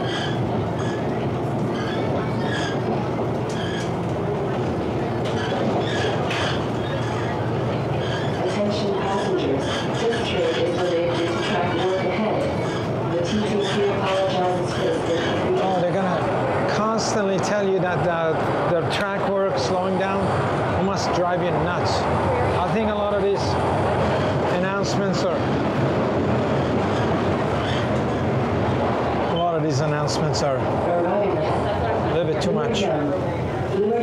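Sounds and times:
subway train rumbling: 0.0s - 34.0s.

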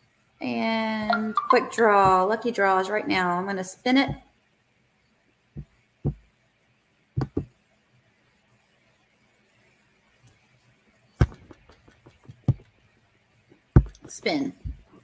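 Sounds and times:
faint background hiss: 0.0s - 15.0s
short knocks: 7.2s - 7.5s, 13.8s - 14.1s.

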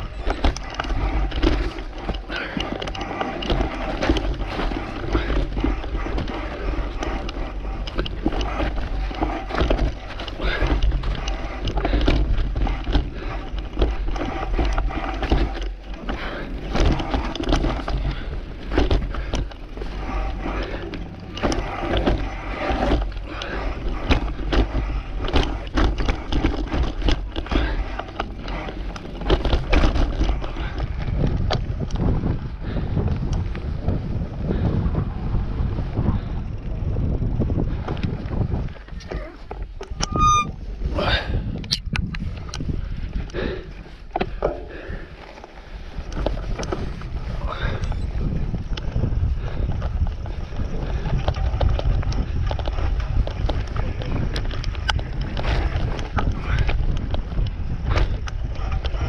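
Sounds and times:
bicycle tyres on dirt: 0.0s - 59.0s
bike rattling over bumps: 0.0s - 59.0s
wind rumble on microphone: 0.0s - 59.0s.

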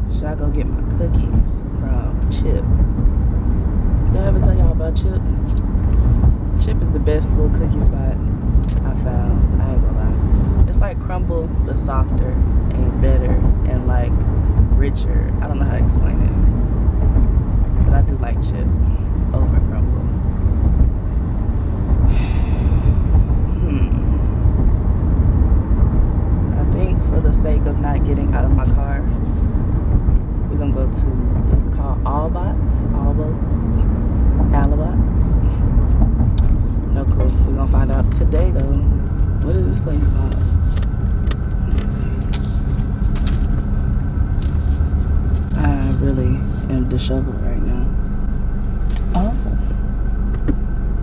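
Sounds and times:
car cabin road and engine rumble: 0.0s - 51.0s
light metallic clicks and jingles: 5.4s - 6.6s, 8.2s - 9.0s, 40.0s - 46.4s, 48.9s - 50.6s
person speaking: 36.9s - 40.6s, 45.4s - 48.0s, 49.0s - 49.8s.

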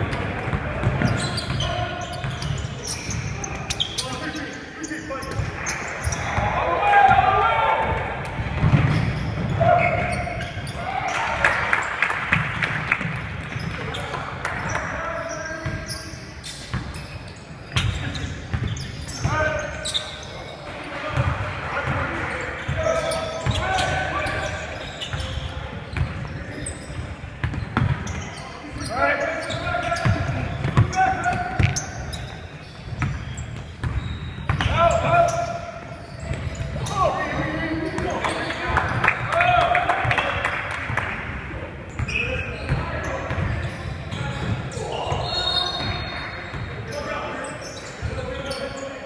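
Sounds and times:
sneakers squeaking: 0.0s - 49.0s.

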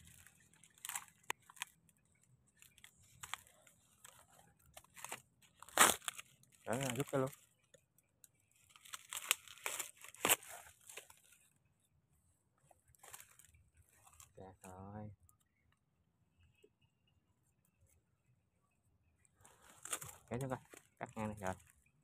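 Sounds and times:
dry palm fronds crunching: 0.0s - 7.4s, 8.5s - 11.5s, 12.9s - 14.8s, 19.4s - 21.8s.

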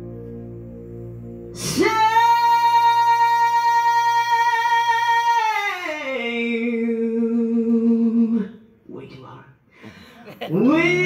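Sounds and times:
man singing long note: 0.0s - 8.5s, 10.6s - 11.0s.

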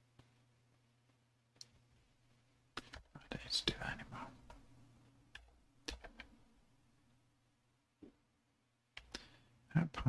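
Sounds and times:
person whispering: 3.1s - 4.4s.

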